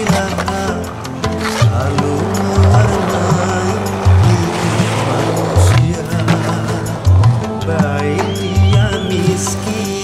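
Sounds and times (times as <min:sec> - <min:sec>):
music with bass line: 0:00.0 - 0:10.0
skateboard wheels rolling on asphalt: 0:00.0 - 0:10.0.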